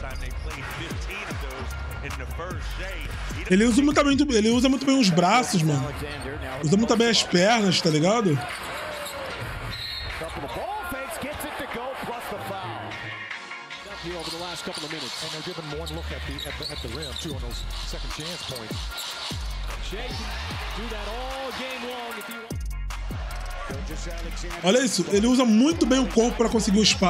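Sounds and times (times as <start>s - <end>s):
backing music with low bass: 0.0s - 7.2s, 19.4s - 21.6s, 22.5s - 27.0s
voices: 3.5s - 8.6s
arena crowd noise: 3.5s - 16.2s, 19.7s - 27.0s.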